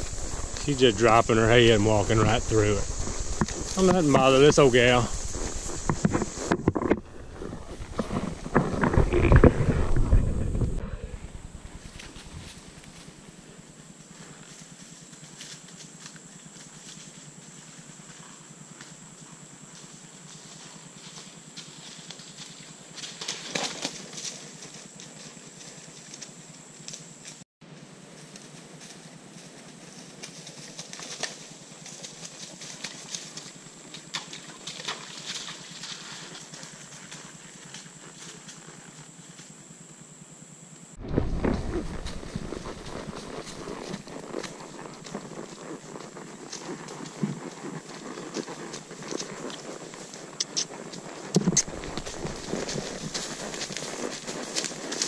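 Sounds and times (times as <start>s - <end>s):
hooves crunching through dry leaves: 0.0s - 10.4s, 11.6s - 39.6s, 41.0s - 55.0s
rustling: 0.0s - 17.6s, 41.0s - 55.0s.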